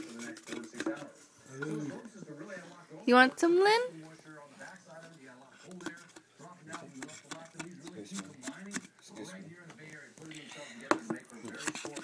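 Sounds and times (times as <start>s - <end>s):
quiet adult speech: 0.0s - 12.0s.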